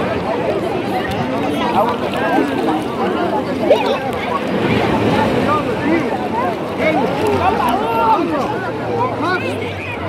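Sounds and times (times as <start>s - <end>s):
shallow sea water washing: 0.0s - 8.8s
voices talking and calling out: 0.0s - 10.0s.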